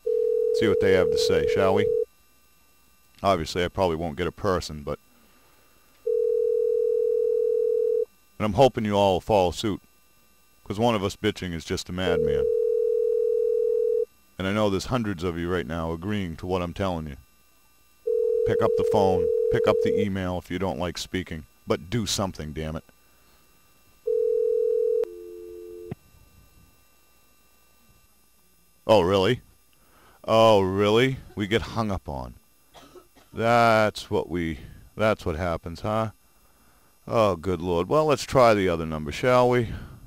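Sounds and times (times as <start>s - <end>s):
telephone ringback tone: 0.0s - 2.1s, 6.0s - 8.1s, 12.1s - 14.1s, 18.0s - 20.1s, 24.0s - 26.0s.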